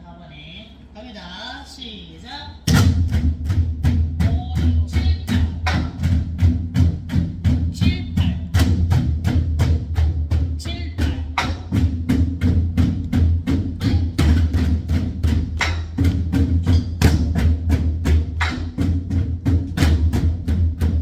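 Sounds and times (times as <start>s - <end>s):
barrel drums struck with sticks: 2.6s - 21.0s.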